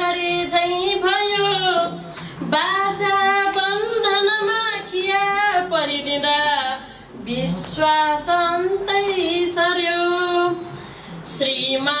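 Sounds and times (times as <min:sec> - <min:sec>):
woman singing: 0:00.0 - 0:12.0
breath: 0:10.8 - 0:11.2.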